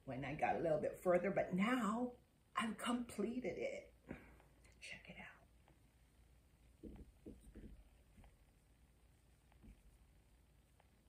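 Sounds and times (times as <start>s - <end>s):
soft handling of yarn: 3.9s - 11.0s
faint whisper: 4.0s - 5.8s.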